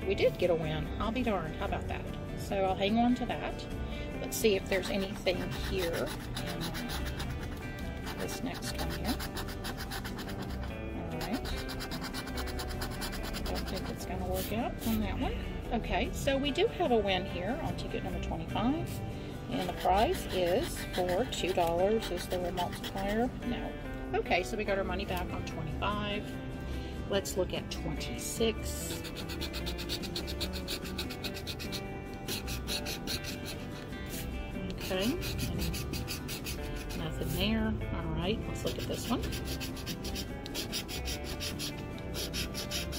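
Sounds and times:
coin scraping scratch card: 4.7 - 15.0, 19.6 - 23.2, 28.8 - 37.4, 38.6 - 42.9.

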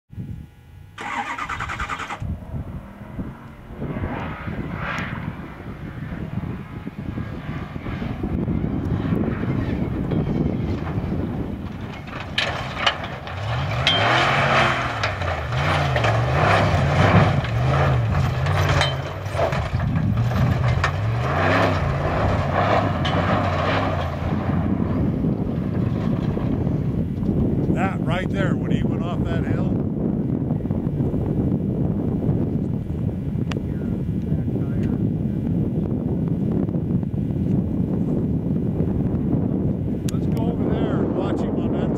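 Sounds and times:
truck engine revving hard: 9.1 - 27.0
knocks and rattles of bouncing truck: 10.0 - 27.9.

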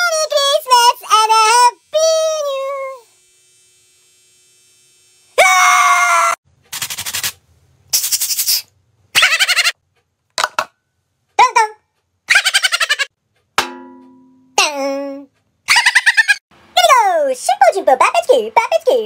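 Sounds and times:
loud scream: 5.4 - 6.4.

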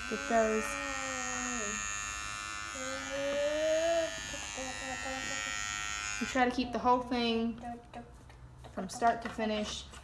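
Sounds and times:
electric hair trimmer buzzing: 0.0 - 6.6.

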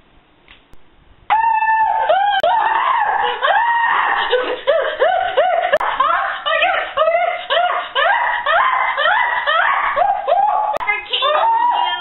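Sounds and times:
girl screaming: 1.3 - 4.6, 5.4 - 12.0.

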